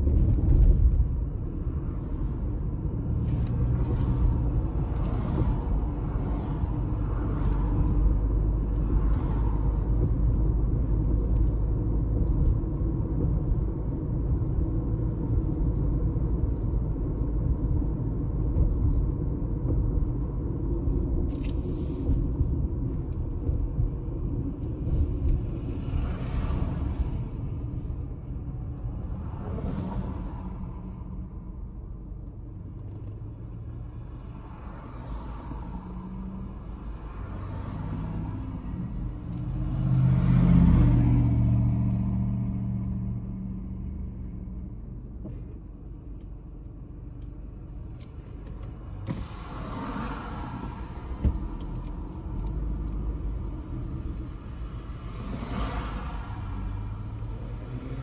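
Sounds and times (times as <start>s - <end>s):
car road rumble and engine: 0.0s - 58.0s
vehicles passing: 0.0s - 58.0s.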